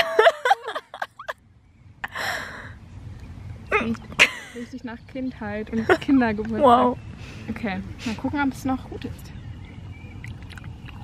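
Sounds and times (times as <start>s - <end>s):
woman giggling: 0.0s - 1.4s, 3.8s - 4.7s
sharp breaths through nose: 7.1s - 8.2s.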